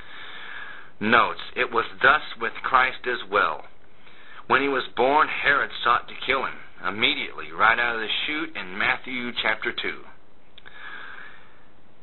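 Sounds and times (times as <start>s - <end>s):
man breathing in through nose: 0.0s - 1.0s, 3.9s - 4.5s, 10.6s - 11.8s.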